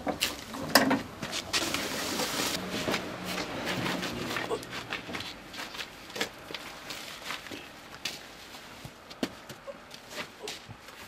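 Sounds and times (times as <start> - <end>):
shuffling: 1.2 - 11.0.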